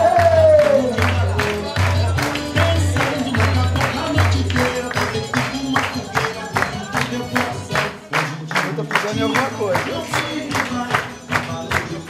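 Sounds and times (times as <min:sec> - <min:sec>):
dance music with beat and bass: 0:00.0 - 0:12.0
person singing: 0:00.0 - 0:12.0.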